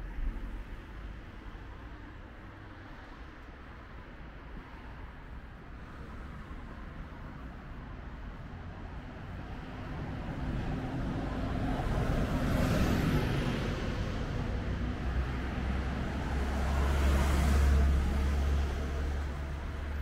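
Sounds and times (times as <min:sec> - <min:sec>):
vehicles passing: 0:00.0 - 0:20.0.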